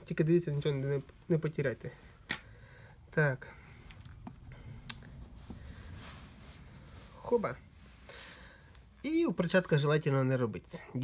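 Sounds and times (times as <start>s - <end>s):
gloved hands rustling: 3.6s - 9.5s.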